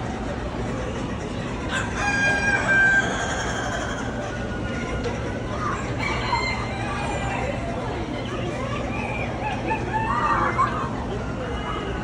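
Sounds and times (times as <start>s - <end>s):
rooster crowing: 1.7s - 4.1s, 6.0s - 7.3s.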